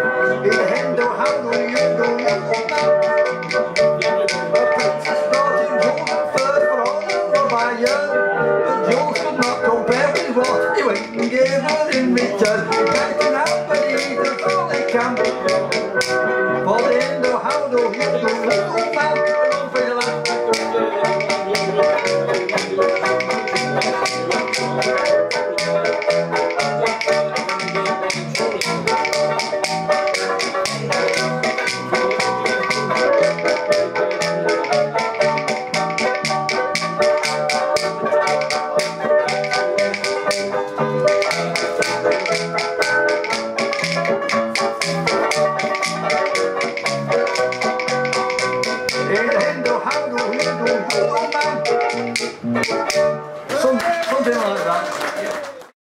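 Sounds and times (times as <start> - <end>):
banjolele strummed fast: 0.0 - 54.6
rapid tapping clicks: 0.5 - 8.2, 8.9 - 53.1.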